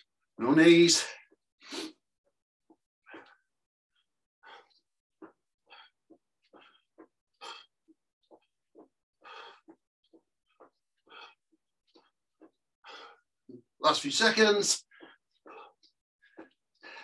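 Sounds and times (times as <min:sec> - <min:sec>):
man breathing heavily: 0:02.7 - 0:13.6, 0:14.8 - 0:17.0.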